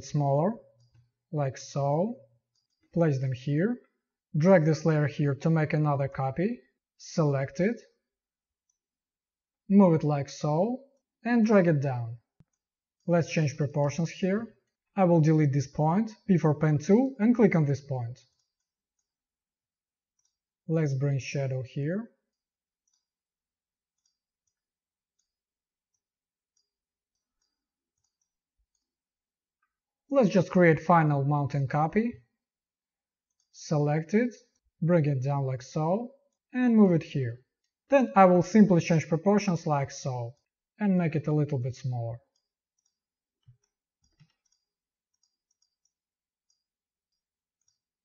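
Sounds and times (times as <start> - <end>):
computer mouse clicks: 0.6 - 1.2, 24.0 - 28.9, 42.2 - 47.9.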